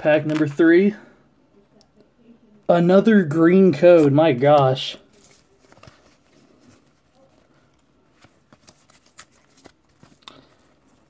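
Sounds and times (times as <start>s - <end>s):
cards clicking and rustling: 0.2s - 0.6s, 4.5s - 7.0s, 7.8s - 11.0s.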